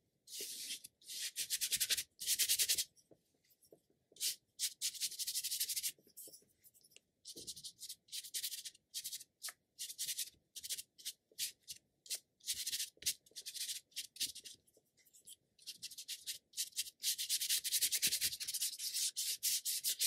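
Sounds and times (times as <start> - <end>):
ink brush scratching on paper: 0.3 - 2.9, 4.2 - 11.5, 15.2 - 20.0.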